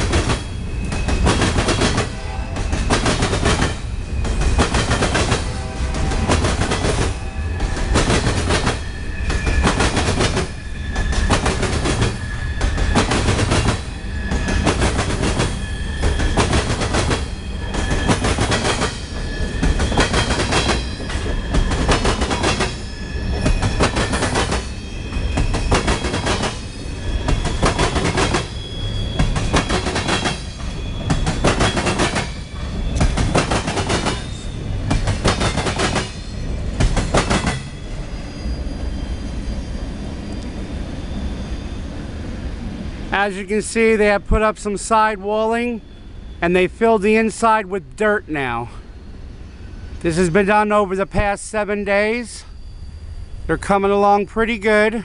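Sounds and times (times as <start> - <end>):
clickety-clack of train wheels: 0.0 - 38.1
freight train rumbling past: 0.0 - 55.0.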